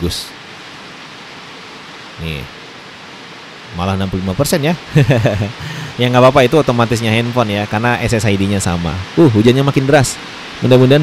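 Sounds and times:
heavy rain falling: 0.0s - 11.0s.

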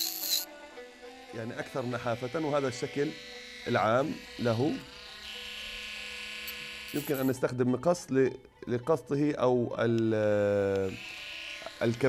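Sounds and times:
rotary tool motor whine: 0.0s - 7.3s, 10.8s - 12.0s.

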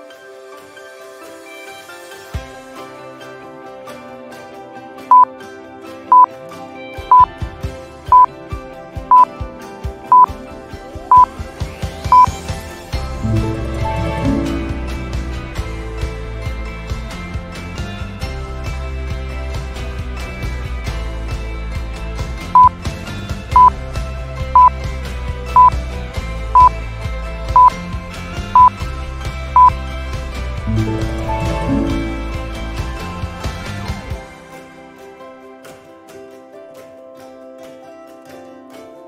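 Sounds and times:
background music with a beat: 0.0s - 37.8s
short electronic beeps: 7.1s - 7.3s, 8.1s - 8.3s, 12.1s - 12.3s, 22.6s - 22.8s, 23.5s - 23.7s, 27.6s - 27.8s, 28.6s - 28.8s, 29.6s - 29.8s.

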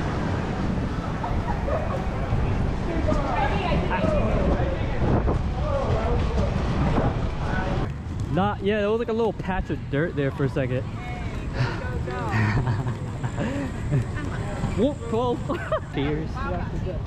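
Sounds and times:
wind on microphone: 0.0s - 7.9s
skate wheels rolling on pavement: 0.0s - 17.0s.

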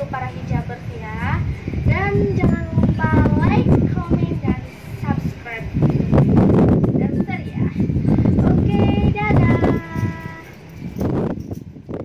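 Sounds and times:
wind rumble on microphone: 0.0s - 12.0s
woman's high-pitched vocal sound: 7.0s - 10.6s.

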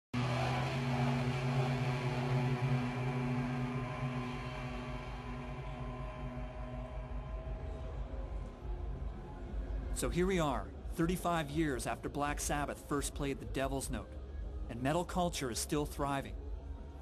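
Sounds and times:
low droning music: 0.2s - 17.0s.

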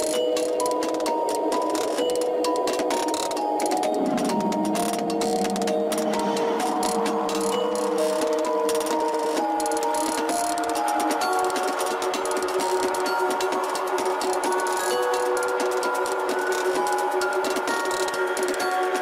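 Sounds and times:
crackling click texture: 0.0s - 13.1s
held synth notes: 0.0s - 19.0s.

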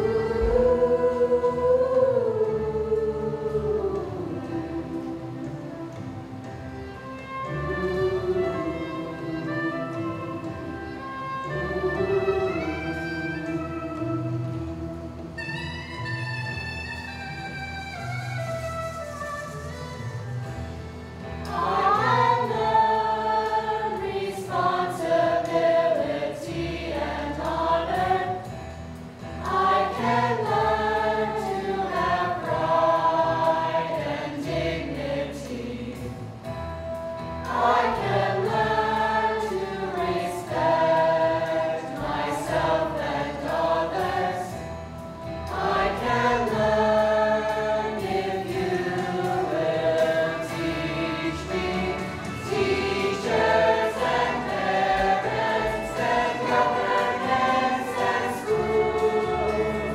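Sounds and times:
girls' choir singing: 0.0s - 6.2s, 7.4s - 15.1s, 21.4s - 28.5s, 29.4s - 36.5s, 37.4s - 44.7s, 45.4s - 59.9s.

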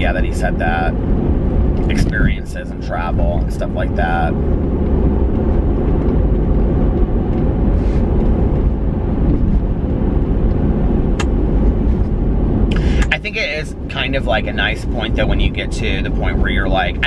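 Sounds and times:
car cabin road rumble: 0.0s - 17.0s.

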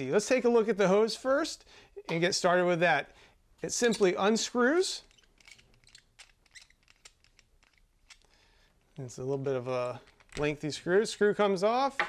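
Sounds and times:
threaded fitting clicking: 5.1s - 8.3s.

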